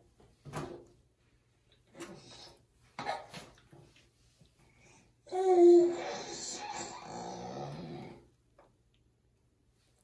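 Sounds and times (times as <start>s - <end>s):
baby vocalizing: 5.3s - 8.2s.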